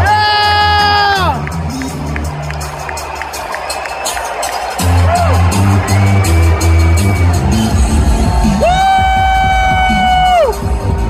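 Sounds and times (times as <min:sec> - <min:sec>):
entrance music over sound system: 0:00.0 - 0:11.0.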